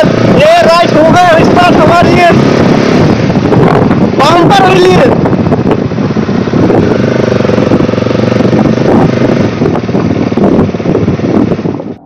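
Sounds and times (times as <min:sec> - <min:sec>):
motorcycle engine running: 0:00.0 - 0:12.0
wind noise on microphone: 0:00.0 - 0:12.0.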